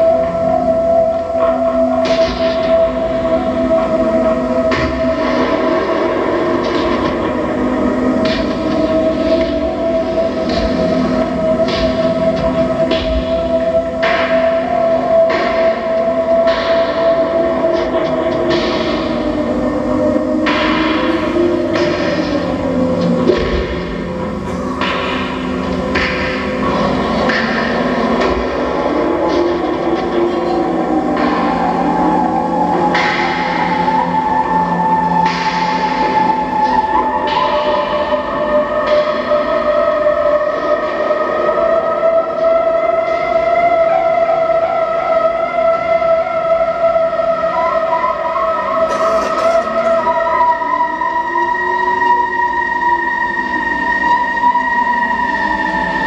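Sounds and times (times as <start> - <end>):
high electronic drone: 47.6 - 56.0.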